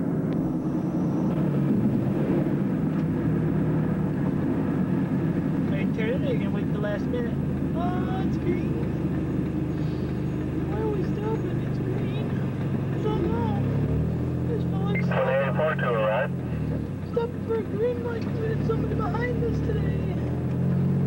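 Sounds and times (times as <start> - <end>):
car engine and road rumble: 0.0 - 21.0.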